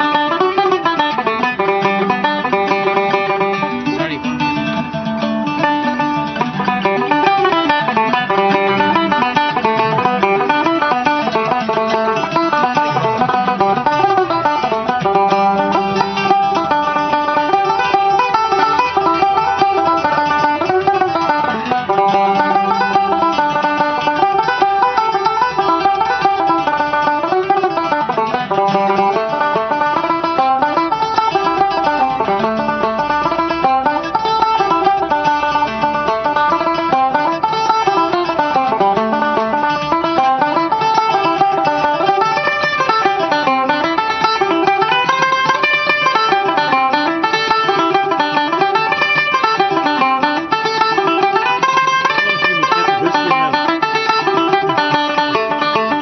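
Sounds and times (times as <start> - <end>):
mandolin-family instrument: 0.0 - 56.0
tenor banjo: 0.0 - 56.0.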